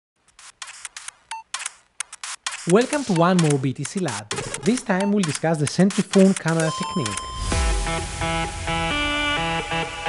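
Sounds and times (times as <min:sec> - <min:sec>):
crisp clicks: 0:00.2 - 0:07.3
brief beep: 0:06.7 - 0:07.5.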